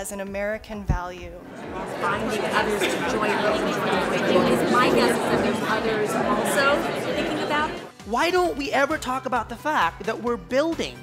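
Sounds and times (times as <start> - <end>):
hubbub of overlapping conversations: 1.2 - 8.2.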